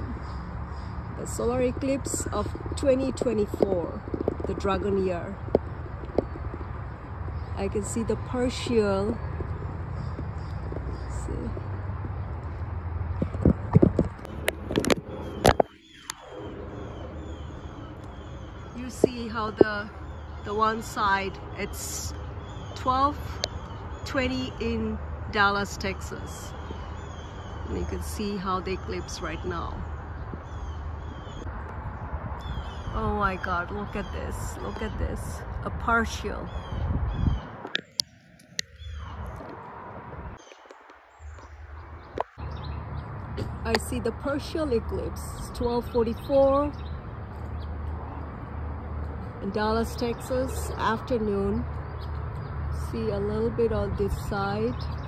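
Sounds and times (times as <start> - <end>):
birds chirping: 0.0 - 55.0.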